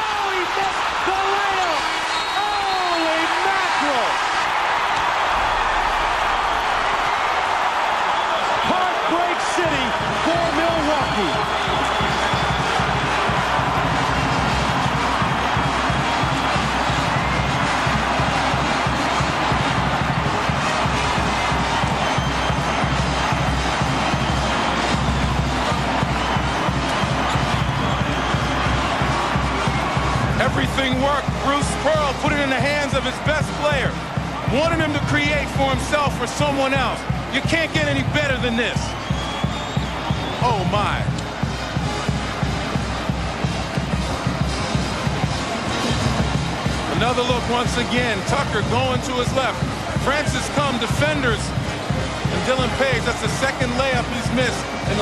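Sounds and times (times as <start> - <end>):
arena crowd roaring: 0.0 - 55.0
band music with a beat: 6.6 - 55.0.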